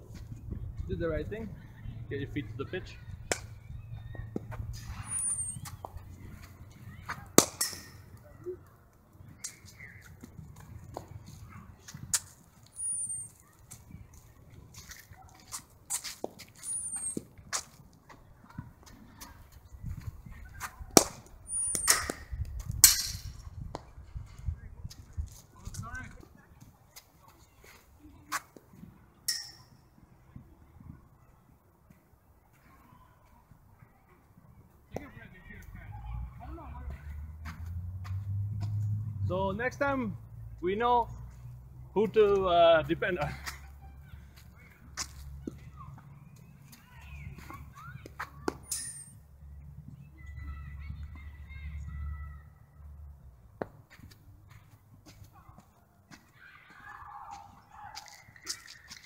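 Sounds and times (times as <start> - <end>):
bird chirping: 3.0 - 6.1, 12.6 - 14.4, 16.6 - 17.2.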